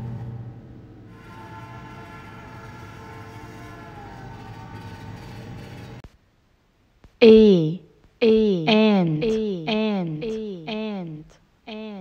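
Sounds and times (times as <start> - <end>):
train horn tones: 1.0 - 5.6.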